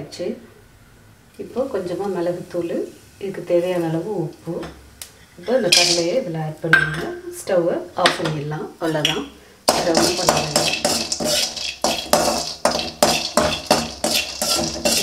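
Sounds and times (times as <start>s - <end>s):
metal spoon scraping a pan: 5.2s - 6.2s, 9.1s - 15.0s.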